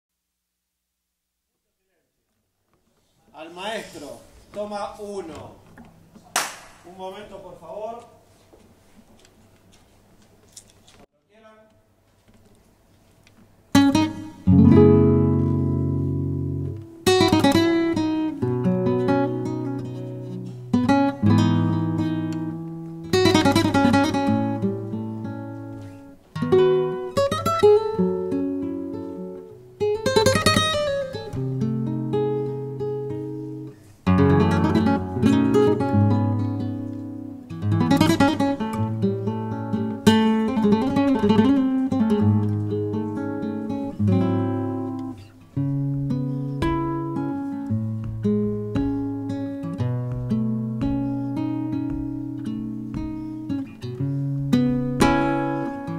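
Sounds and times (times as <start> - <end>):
flamenco guitar strummed chords: 13.7 - 55.9.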